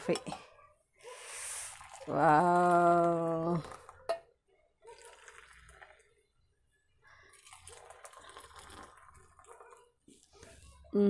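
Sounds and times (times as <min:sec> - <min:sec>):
liquid pouring and splashing: 0:01.2 - 0:04.2, 0:04.8 - 0:06.3, 0:07.0 - 0:10.7.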